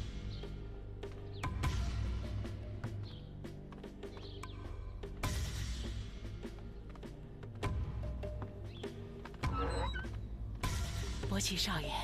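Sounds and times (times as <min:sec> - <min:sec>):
wooden doors scraping and squeaking: 0:09.2 - 0:10.4.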